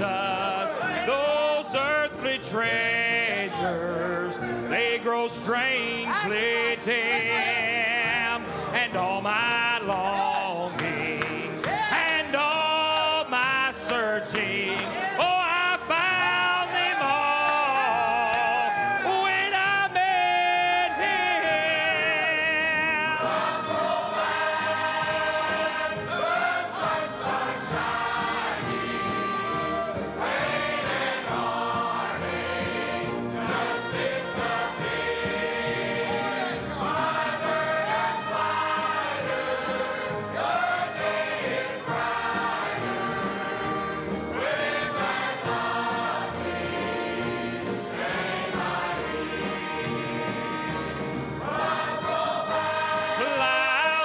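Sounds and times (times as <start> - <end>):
church choir singing gospel: 0.0 - 54.0.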